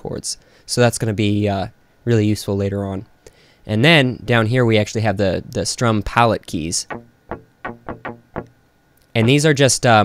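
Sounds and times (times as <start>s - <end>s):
electric guitar single notes: 6.9s - 8.6s.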